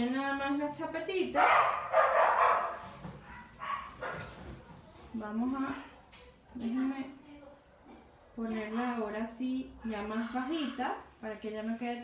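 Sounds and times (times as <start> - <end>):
dog barking: 1.4 - 4.4.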